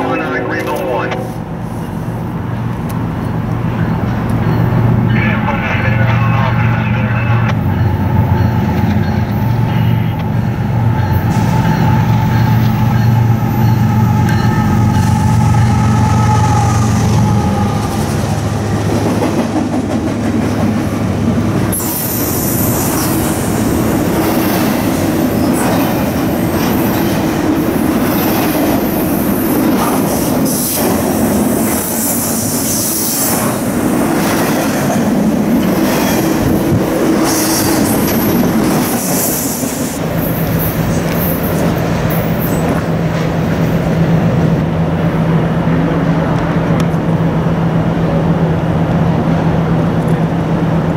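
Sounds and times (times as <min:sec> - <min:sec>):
diesel locomotive engines: 0:00.0 - 0:50.9
train wheel squeal: 0:07.7 - 0:18.1, 0:21.7 - 0:23.4
train wheels clickety-clack: 0:17.6 - 0:21.0.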